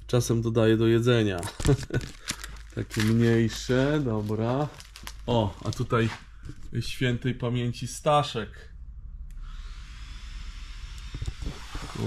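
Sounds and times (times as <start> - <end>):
power grinder running: 9.5 - 12.0.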